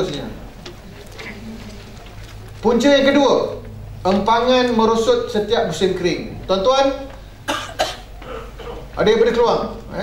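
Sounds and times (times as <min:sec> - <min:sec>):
man coughing: 0:07.5 - 0:08.9.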